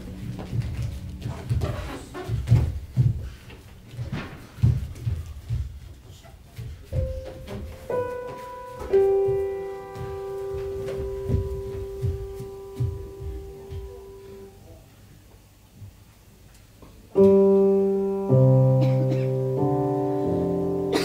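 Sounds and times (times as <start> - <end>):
dancers' steps on stage floor: 0.0 - 14.5
single piano notes: 7.0 - 14.6, 17.2 - 21.0.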